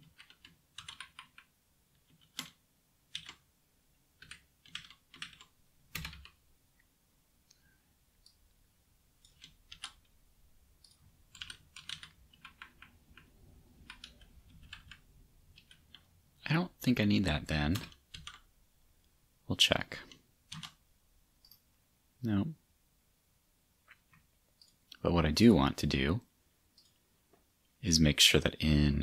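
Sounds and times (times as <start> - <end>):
typing on computer keyboard: 0.0 - 3.5, 4.2 - 6.4, 9.2 - 10.2, 10.8 - 16.1, 17.7 - 18.5, 20.5 - 20.8.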